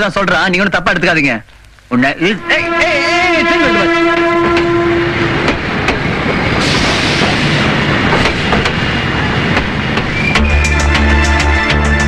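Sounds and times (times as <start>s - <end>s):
train wheels clattering on rails: 4.1s - 11.5s
rushing hiss: 5.7s - 8.9s
music: 10.3s - 12.0s.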